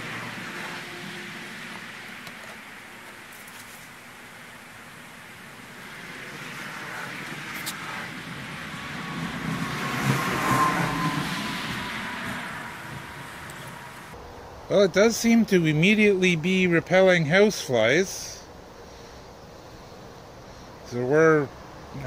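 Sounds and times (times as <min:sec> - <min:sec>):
car passing: 0:00.0 - 0:03.3, 0:03.9 - 0:14.2.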